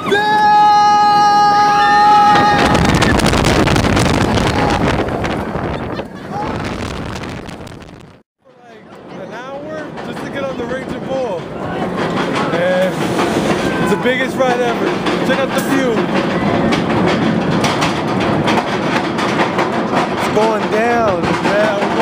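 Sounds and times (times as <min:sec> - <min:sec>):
people shouting: 0:00.0 - 0:03.1
roller coaster track roar: 0:00.0 - 0:07.6, 0:08.6 - 0:22.0
rushing wind: 0:00.4 - 0:08.2.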